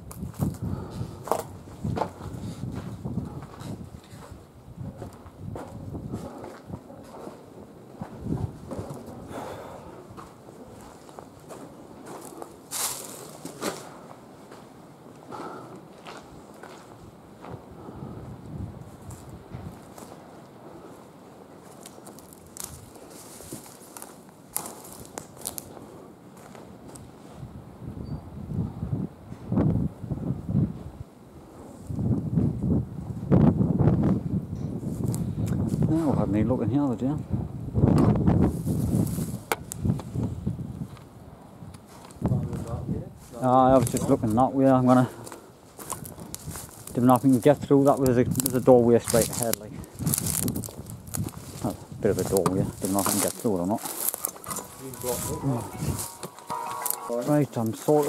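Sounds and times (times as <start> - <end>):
footsteps crunching over debris: 10.2 - 14.7, 21.6 - 27.1, 44.9 - 58.0.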